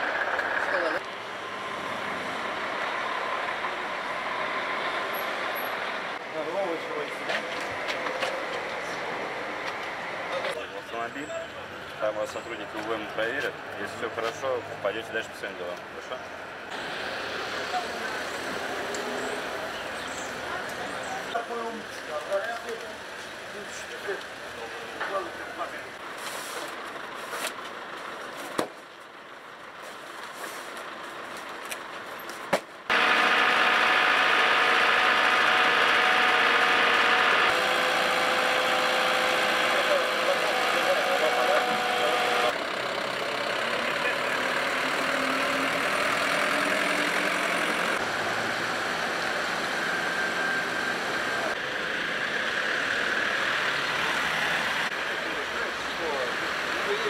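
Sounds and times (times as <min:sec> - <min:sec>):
outdoor yard noise: 0:00.0 - 0:57.0
truck engine idling: 0:32.8 - 0:57.0.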